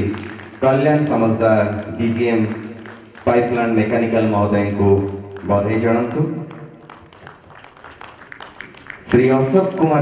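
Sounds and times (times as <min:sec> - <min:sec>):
audience applauding faintly: 0:00.0 - 0:10.0.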